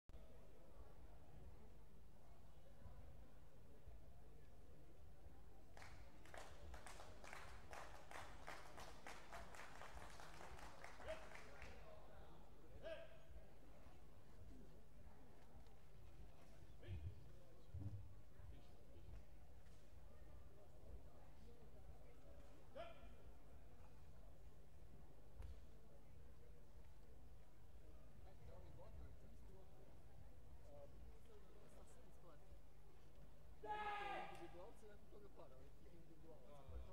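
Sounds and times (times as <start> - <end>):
scattered applause: 5.7 - 12.0.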